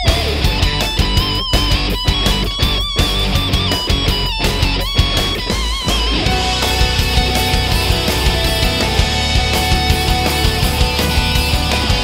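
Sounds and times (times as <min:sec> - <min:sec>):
drums keeping a steady beat: 0:00.0 - 0:12.0
electric guitar lead with vibrato: 0:00.0 - 0:12.0.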